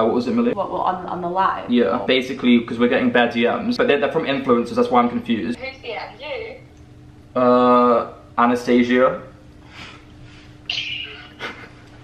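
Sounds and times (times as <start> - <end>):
high-pitched stifled laughter: 10.7 - 12.0.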